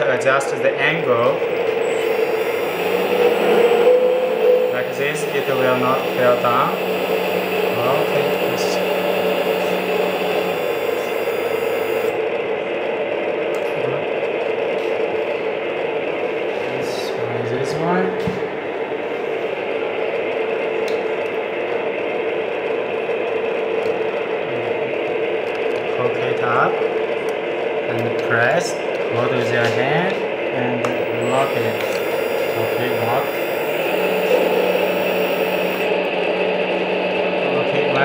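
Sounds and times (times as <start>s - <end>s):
hydraulic pump humming: 0.6s - 12.3s, 30.8s - 38.0s.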